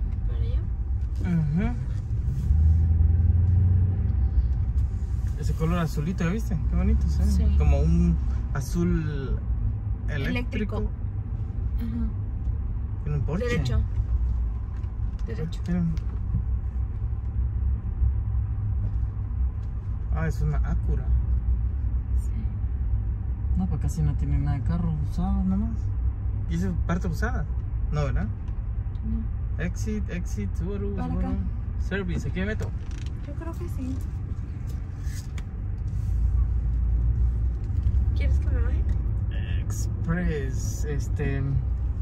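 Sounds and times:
car engine and tyre rumble: 0:00.0 - 0:42.0.

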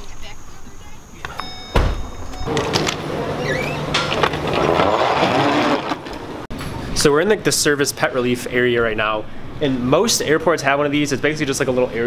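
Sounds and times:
liftgate closing thud: 0:01.6 - 0:06.3
low motor hum: 0:02.4 - 0:06.5.

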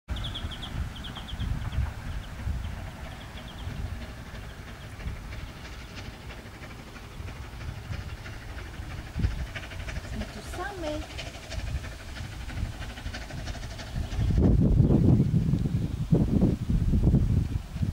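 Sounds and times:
bird chirping: 0:00.1 - 0:09.1
distant steam locomotive rumble: 0:00.1 - 0:17.9.

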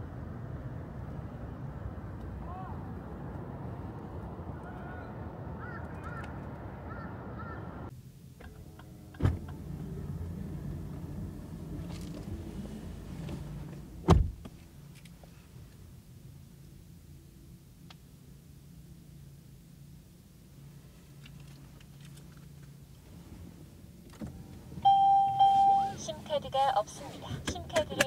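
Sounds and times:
heavy thumps in car: 0:14.0 - 0:14.6.

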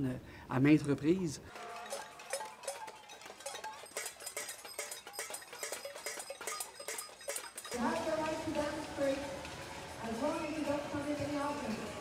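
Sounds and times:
pots and pans being banged: 0:01.5 - 0:09.9.

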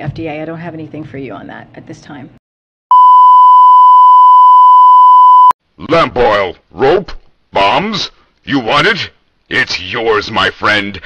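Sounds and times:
high-pitched test-tone beep: 0:02.9 - 0:05.5.

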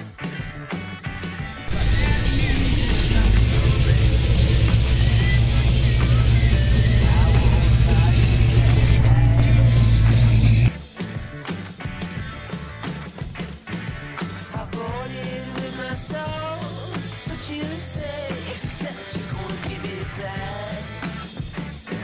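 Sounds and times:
car engine deep rumble: 0:01.7 - 0:10.7.

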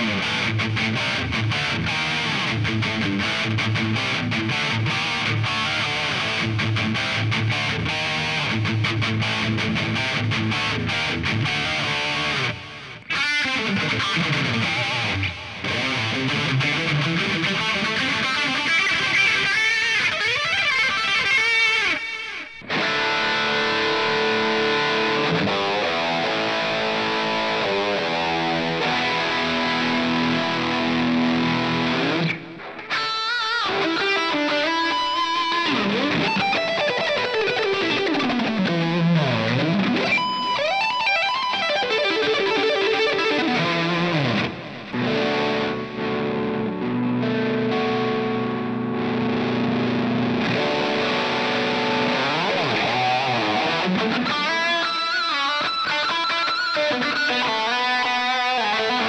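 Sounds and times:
electric guitar lead notes: 0:00.0 - 0:59.0
guitar tremolo-bar dive: 0:00.0 - 0:59.0.

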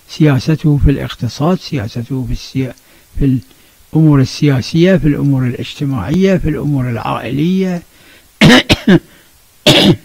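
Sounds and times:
man coughing: 0:08.4 - 0:10.0.

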